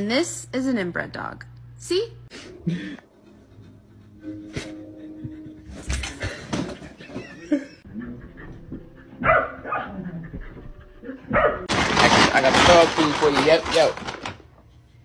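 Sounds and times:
dog barking: 9.2s - 10.3s, 11.0s - 11.7s.

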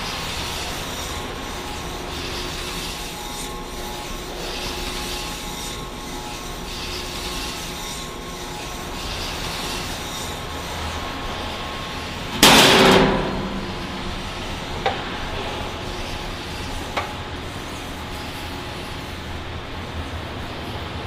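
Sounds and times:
agitator drive humming: 0.0s - 21.0s
loud sudden burst of noise: 12.4s - 15.8s.

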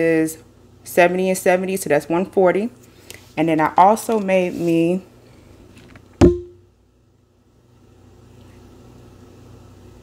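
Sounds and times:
ceramic mug knocking on surface: 6.2s - 6.6s.

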